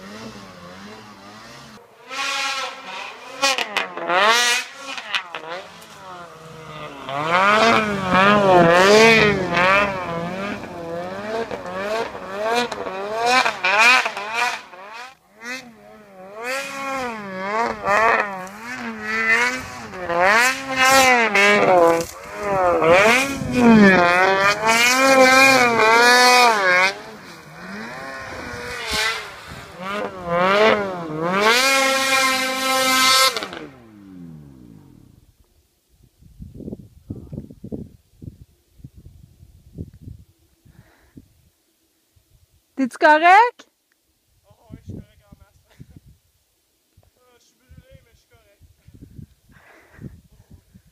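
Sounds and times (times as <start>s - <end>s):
snowmobile engine revving: 0.0s - 35.4s.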